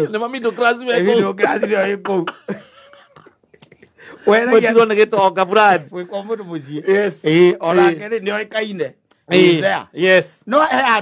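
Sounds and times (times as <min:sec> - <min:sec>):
man speaking: 0:00.0 - 0:02.5, 0:04.2 - 0:11.0.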